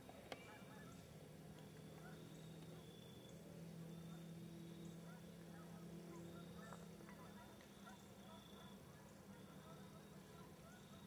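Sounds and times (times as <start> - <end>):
distant geese honking: 0.4 - 11.0.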